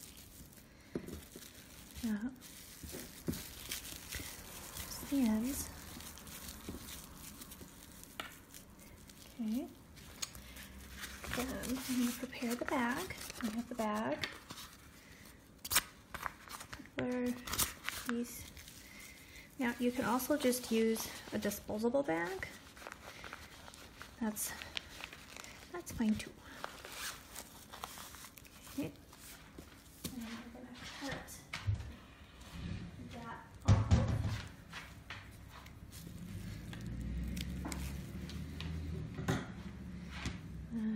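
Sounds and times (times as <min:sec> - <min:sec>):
plastic wrap crinkling: 0:00.0 - 0:31.3, 0:34.3 - 0:38.9.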